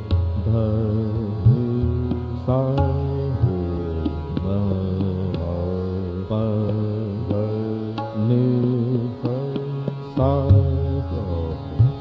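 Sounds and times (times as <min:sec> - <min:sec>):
man singing classical vocals: 0:00.0 - 0:12.0
tabla strokes: 0:00.0 - 0:12.0.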